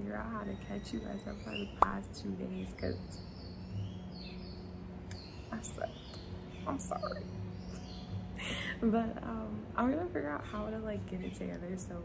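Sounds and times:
steady low hum: 0.0s - 12.0s
faint high bird chirps: 2.7s - 8.2s.

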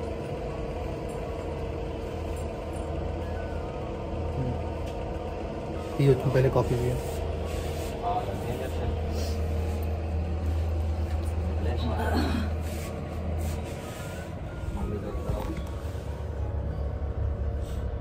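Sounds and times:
steady low hum: 0.0s - 18.0s
faint voices: 7.9s - 16.7s.

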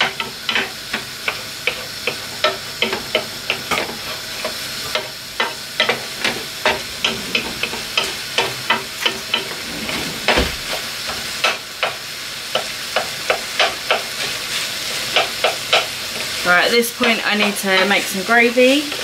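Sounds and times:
meat sizzling in frying pan: 0.0s - 9.6s, 10.6s - 19.0s
wooden spoon scraping pan: 5.8s - 11.6s.

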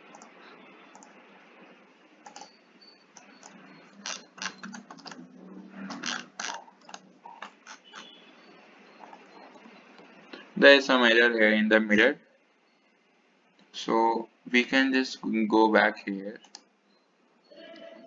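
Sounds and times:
low steady hiss: 0.0s - 18.0s
mouse and keyboard clicks: 2.2s - 2.6s, 3.2s - 5.2s, 5.9s - 8.1s.

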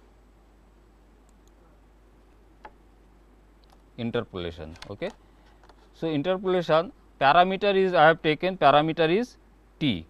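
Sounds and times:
low room tone hum: 0.0s - 10.0s.

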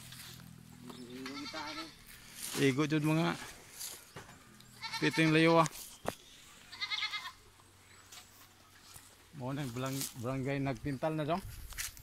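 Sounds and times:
goat bleating: 1.1s - 2.2s, 4.7s - 5.6s, 6.6s - 7.5s.

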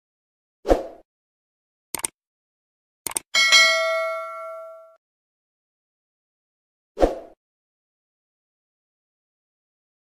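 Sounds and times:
notification bell ding: 3.4s - 5.0s.

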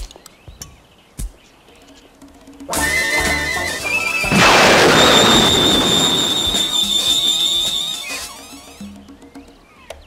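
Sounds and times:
explosion-like burst: 4.3s - 7.2s.

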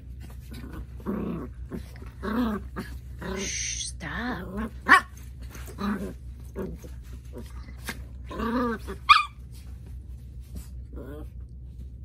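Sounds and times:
dogs growling: 0.2s - 9.1s, 10.6s - 11.6s
scuffling on bedding: 5.0s - 12.0s
dog barking: 9.1s - 9.4s.

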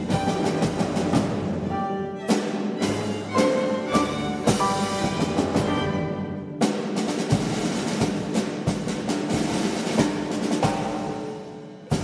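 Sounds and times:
percussion strokes: 0.0s - 12.0s
sustained orchestral instruments: 0.0s - 12.0s.

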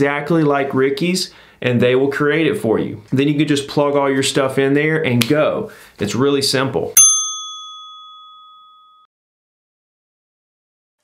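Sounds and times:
bell ding: 7.0s - 9.1s.

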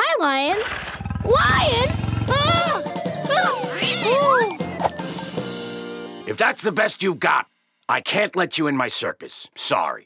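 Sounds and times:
light background music: 1.6s - 7.4s
cartoon kitten crying: 2.3s - 4.5s.

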